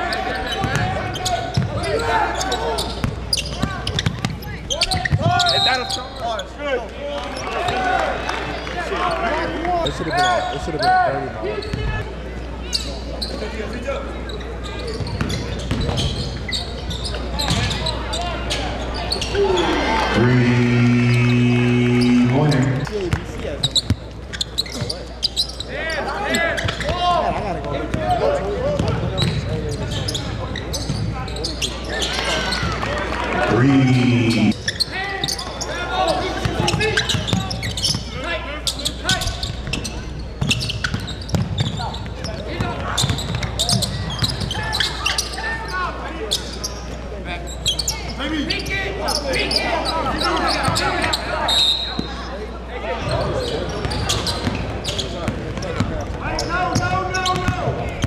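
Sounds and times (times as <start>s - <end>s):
voices of players and spectators: 0.0s - 58.0s
shoes squeaking on court: 2.4s - 6.3s, 14.3s - 18.0s, 23.6s - 25.7s, 36.9s - 42.1s, 53.0s - 55.6s
loud steady tone: 20.2s - 22.9s, 33.5s - 34.6s.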